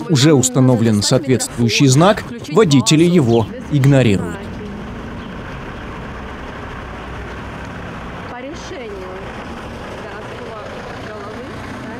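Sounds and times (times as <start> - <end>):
minivan engine running: 0.0 - 11.9.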